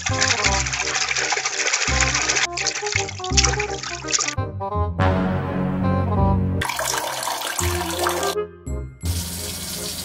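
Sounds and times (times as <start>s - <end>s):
water splashing over fruit: 0.0s - 4.4s, 6.6s - 8.4s
background music: 0.0s - 10.0s.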